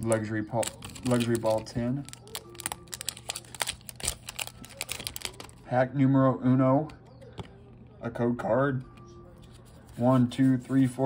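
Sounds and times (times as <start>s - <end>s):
foil wrapper crinkling: 0.0s - 5.6s.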